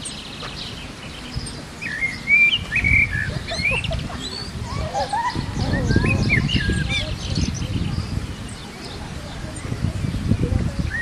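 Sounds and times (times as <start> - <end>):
birds chirping and twittering: 0.0 - 11.0.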